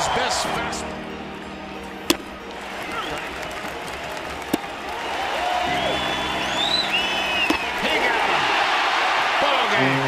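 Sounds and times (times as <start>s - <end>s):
ballpark crowd noise: 0.0s - 10.0s
baseball hitting glove crack: 2.1s - 4.8s, 7.4s - 8.1s.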